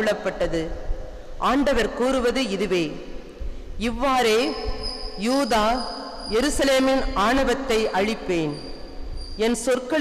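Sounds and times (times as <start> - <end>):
woman reading over loudspeakers: 0.0 - 0.8, 1.4 - 3.0, 3.8 - 8.7, 9.4 - 10.0.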